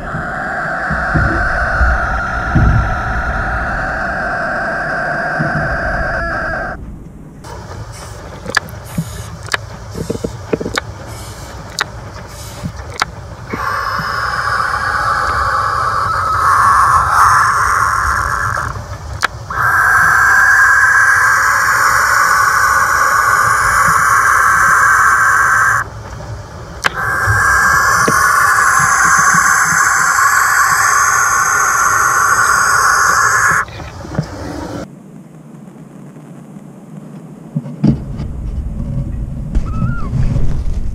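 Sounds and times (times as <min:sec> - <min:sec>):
owl hissing calls: 0:00.0 - 0:06.8, 0:11.1 - 0:11.6, 0:12.3 - 0:12.7, 0:13.5 - 0:25.9, 0:26.8 - 0:34.9
wind rumbling low: 0:00.0 - 0:40.9
owl sharp clicks: 0:11.7 - 0:25.8, 0:26.8 - 0:33.7.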